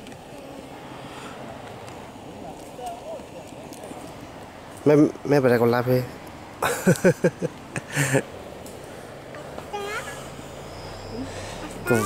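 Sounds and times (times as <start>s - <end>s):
faint distant voices: 0.0s - 7.0s, 7.8s - 12.0s
outdoor background hiss: 0.0s - 12.0s.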